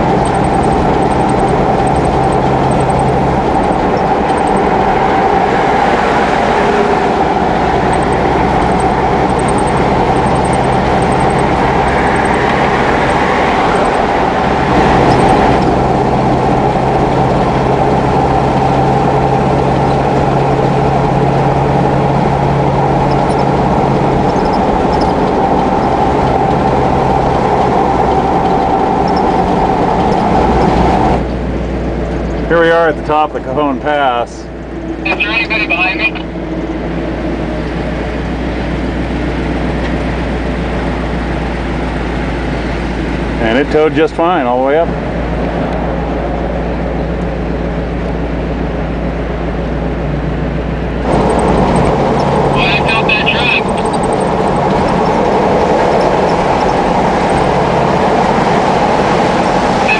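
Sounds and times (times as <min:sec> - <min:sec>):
car road and engine noise: 0:00.0 - 0:59.9.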